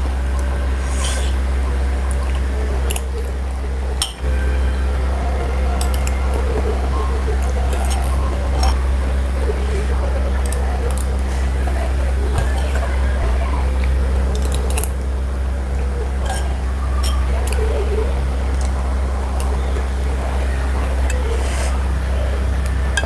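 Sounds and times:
steady low hum: 0.0 - 23.0
chewing: 5.8 - 13.0, 13.7 - 15.0
spoon scraping ceramic plate: 7.8 - 8.8, 16.2 - 17.3.

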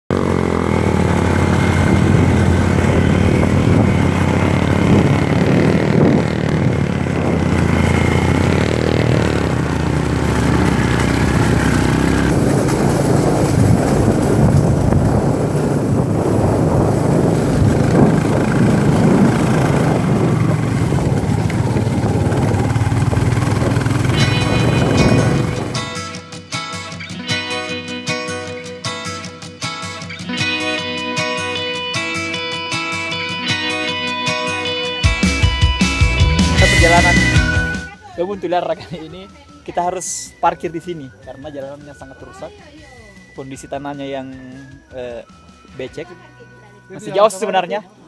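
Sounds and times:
motorcycle engine running: 0.1 - 27.0, 28.5 - 39.6.

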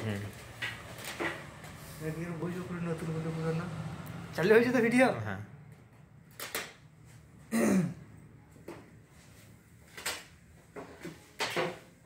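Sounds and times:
person clearing throat: 7.5 - 8.1.

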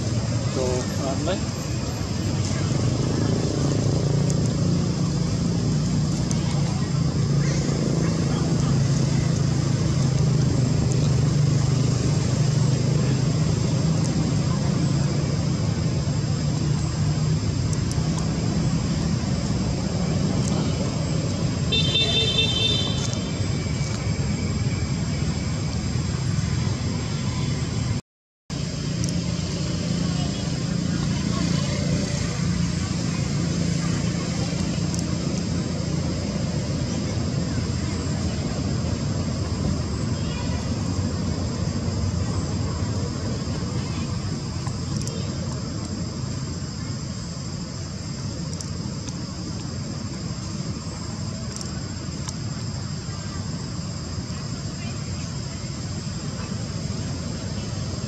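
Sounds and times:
road traffic rumble: 0.0 - 58.0.

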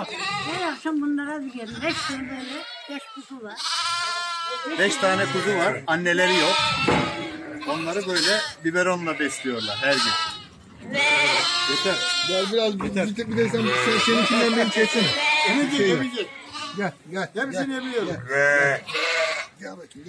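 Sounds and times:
sheep and lambs bleating: 0.0 - 19.7.

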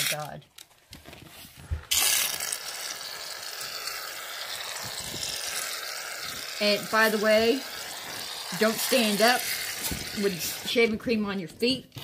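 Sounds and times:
aerosol can spraying foam: 1.9 - 11.3.

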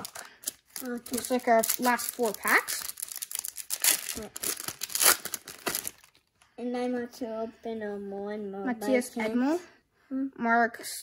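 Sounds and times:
foil wrapper crinkling: 0.0 - 6.3.

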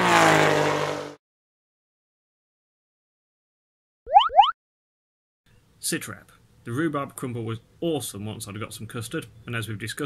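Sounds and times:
engine revving: 0.0 - 1.2.

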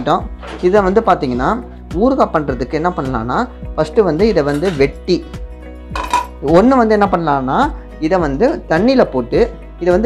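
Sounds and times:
background music: 0.0 - 10.0
metal plate clinking: 5.9 - 6.4.

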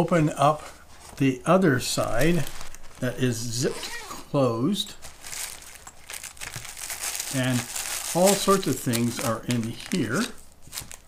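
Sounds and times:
plastic bag crinkling: 2.0 - 4.2, 4.9 - 11.0.

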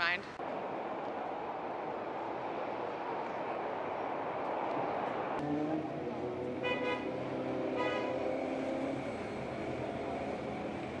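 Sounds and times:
city road traffic: 0.0 - 11.0
bus passing close: 0.4 - 11.0.

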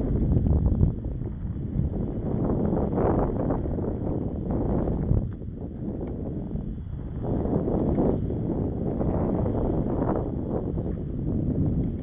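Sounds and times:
bicycle rolling on concrete: 0.0 - 12.0
wind buffeting microphone: 0.0 - 12.0.

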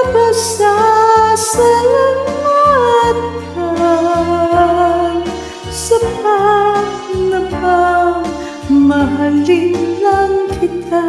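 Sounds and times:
karaoke backing track: 0.0 - 11.0
woman singing: 0.0 - 11.0.

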